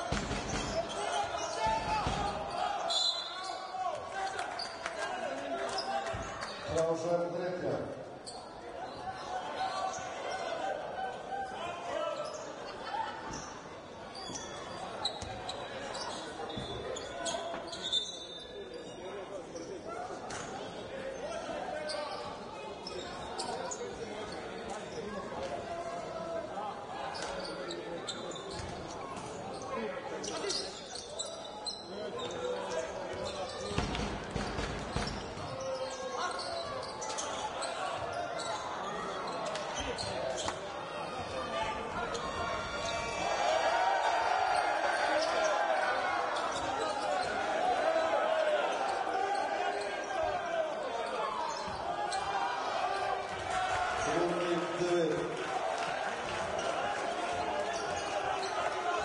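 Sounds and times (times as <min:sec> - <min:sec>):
spectators' voices echoing: 0:00.0 - 0:59.0.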